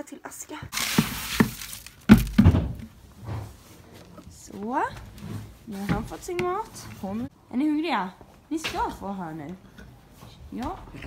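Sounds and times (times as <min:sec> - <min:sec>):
plastic bucket knocks and thumps: 0:00.7 - 0:03.0.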